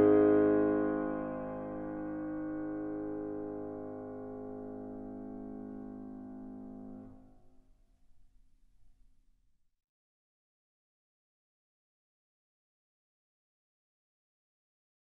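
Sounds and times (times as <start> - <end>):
piano chord ringing: 0.0 - 7.4.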